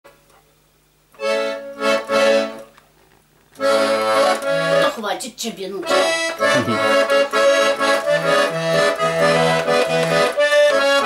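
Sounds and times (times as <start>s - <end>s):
button accordion playing chords: 1.2s - 2.7s, 3.6s - 5.0s, 5.8s - 11.0s.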